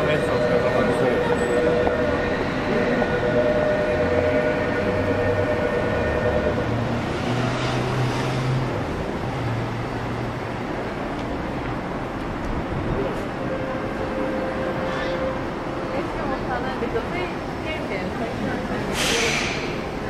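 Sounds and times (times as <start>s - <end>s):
high steady tones: 0.0s - 7.3s
low hum rising in pitch: 0.0s - 8.5s
train rumbling past: 0.0s - 20.0s.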